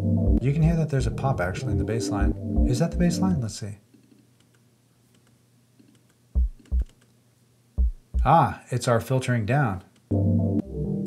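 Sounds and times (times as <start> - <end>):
loud low bass notes: 0.0 - 1.3
keyboard and mouse clicks: 3.9 - 7.2.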